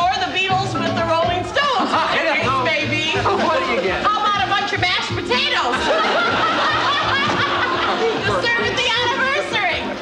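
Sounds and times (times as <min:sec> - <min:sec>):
theme music: 0:00.0 - 0:10.0
people laughing: 0:01.6 - 0:04.6, 0:05.3 - 0:09.7.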